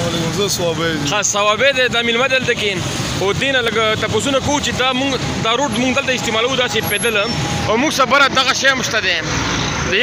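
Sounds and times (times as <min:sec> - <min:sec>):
man talking: 0:00.0 - 0:10.0
street traffic: 0:00.0 - 0:10.0.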